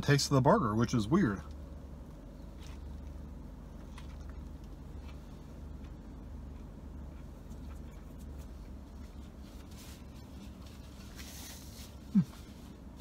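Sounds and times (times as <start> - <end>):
low hum inside car: 0.0 - 13.0
person chewing food: 2.4 - 10.2.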